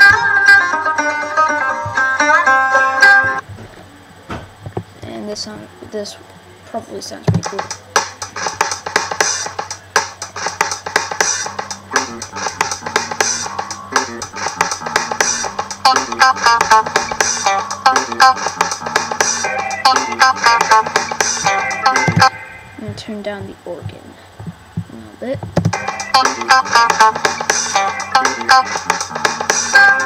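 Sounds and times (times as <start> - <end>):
drum loop: 7.3 - 30.0
electric bass: 11.4 - 23.0.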